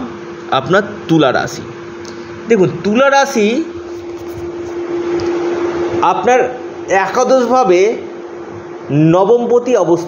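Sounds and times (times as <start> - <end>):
constant hum: 0.0 - 10.0.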